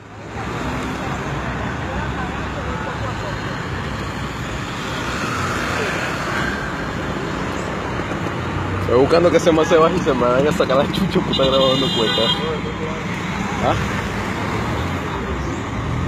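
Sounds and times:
vehicle engines in traffic: 0:00.0 - 0:16.0.

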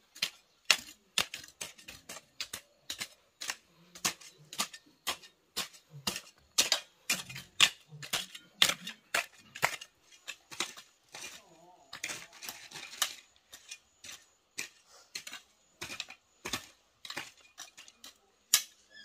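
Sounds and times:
hoe chopping dry soil: 0:00.0 - 0:18.9.

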